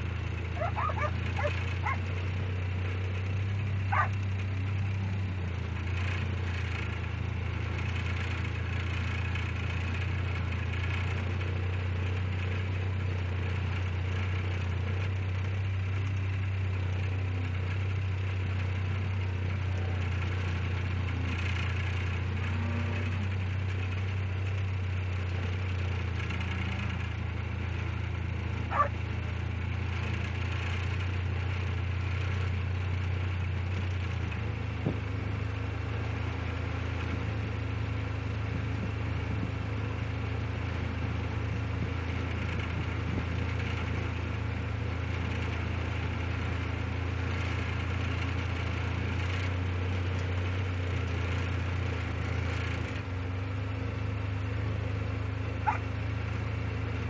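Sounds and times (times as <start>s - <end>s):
engine idling hum: 0.0s - 57.0s.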